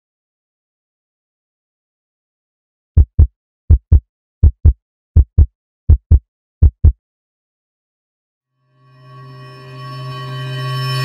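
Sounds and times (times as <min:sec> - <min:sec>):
heartbeat thumps: 0:03.0 - 0:07.0.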